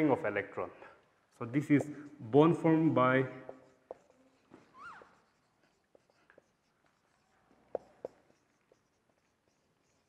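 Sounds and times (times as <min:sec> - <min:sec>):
marker pen writing on whiteboard: 0:01.4 - 0:10.0.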